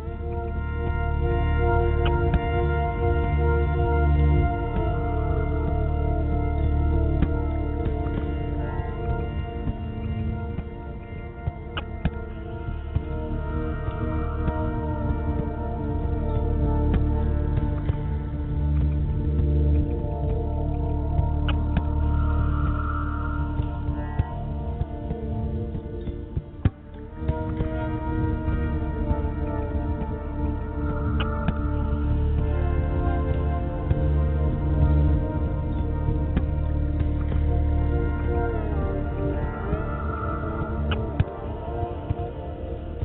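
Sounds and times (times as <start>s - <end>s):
fretless electric guitar ambient tones: 0.0s - 43.0s.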